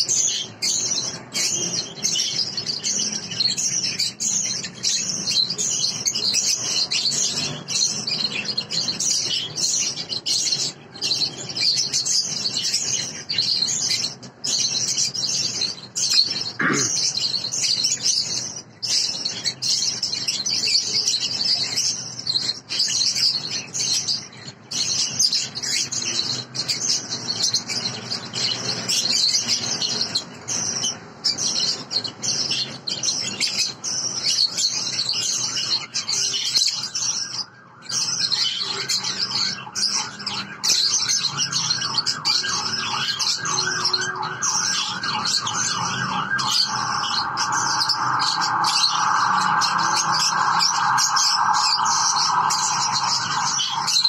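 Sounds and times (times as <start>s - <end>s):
birds chattering shrill chirps: 0.0s - 54.0s.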